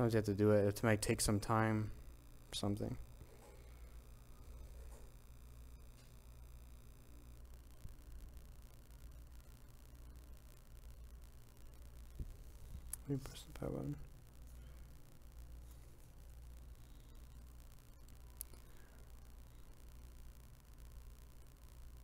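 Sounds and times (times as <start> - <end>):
faint high buzz: 0.0 - 22.0
steady low hum: 0.0 - 22.0.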